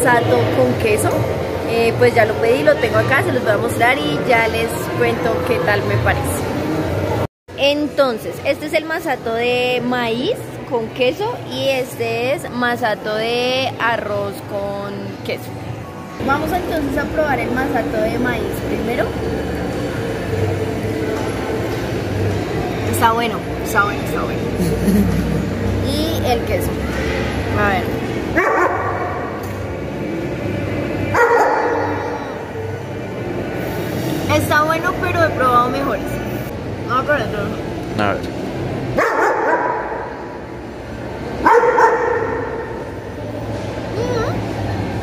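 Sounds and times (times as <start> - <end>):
market hall rumble and hum: 0.0 - 45.0
dog barking in echoing hall: 28.3 - 29.4, 31.1 - 32.3, 39.0 - 40.3, 41.4 - 42.9.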